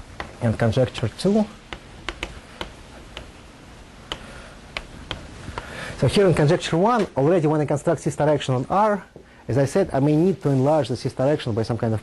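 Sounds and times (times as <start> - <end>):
chalk tapping on blackboard: 1.7 - 3.4, 4.0 - 5.7.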